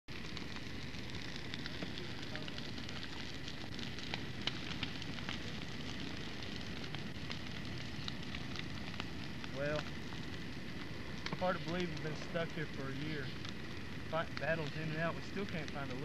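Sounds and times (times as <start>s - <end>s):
bonfire rushing: 0.1s - 16.0s
wood crackling and popping: 0.1s - 16.0s.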